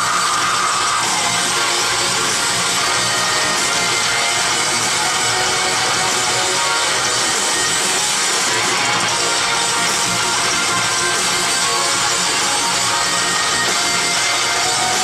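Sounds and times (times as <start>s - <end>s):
live metal band playing: 0.0s - 15.0s.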